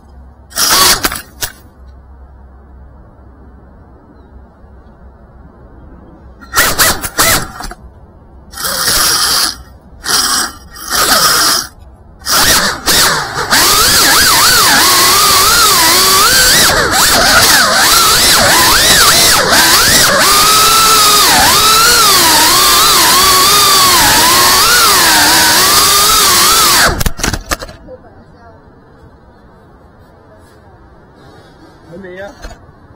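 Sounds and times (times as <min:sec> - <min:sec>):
drone motors whining: 0:08.5 - 0:27.8.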